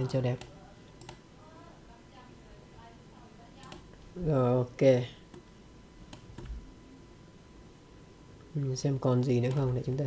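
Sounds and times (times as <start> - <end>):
faint computer mouse clicks: 0.4 - 1.2.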